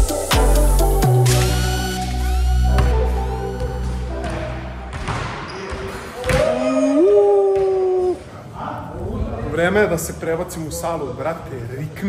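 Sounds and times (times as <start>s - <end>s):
music: 0.0s - 5.5s
basketball bouncing on wooden floor: 4.2s - 6.5s.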